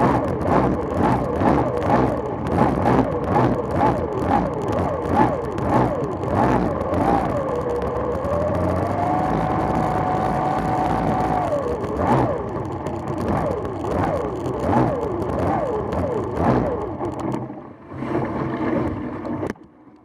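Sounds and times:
outboard engine revving: 0.0 - 19.5.

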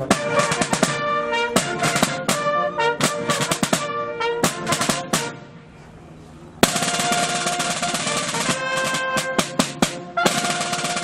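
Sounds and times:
brass holding long note: 0.0 - 5.4, 10.1 - 11.0
field drum roll: 0.0 - 5.5, 6.6 - 11.0.

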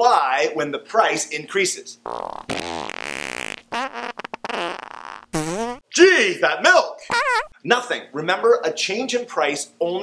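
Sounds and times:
fart sound effects: 2.1 - 5.8, 7.1 - 7.5.

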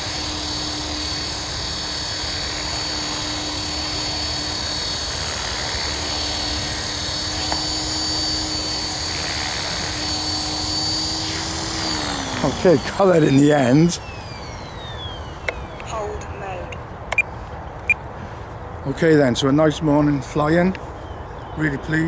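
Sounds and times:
rc helicopter rotor: 0.0 - 18.0
high motor whine: 0.0 - 18.1.

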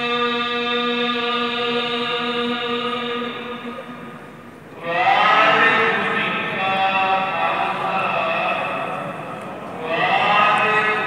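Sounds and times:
man chanting: 0.0 - 4.0, 4.8 - 11.0.

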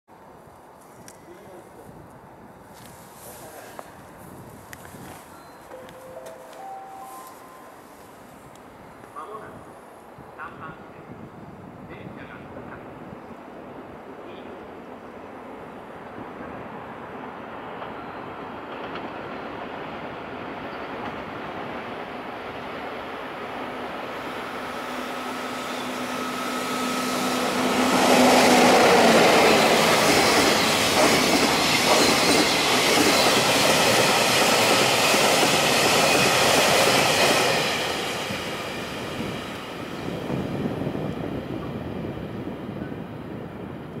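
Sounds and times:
train rumble: 0.6 - 44.0
locomotive steady tone: 5.2 - 9.6, 23.2 - 35.5.

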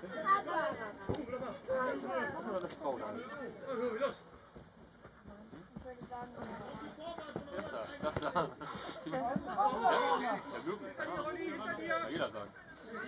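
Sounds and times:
people talking and calling out: 0.0 - 13.0.

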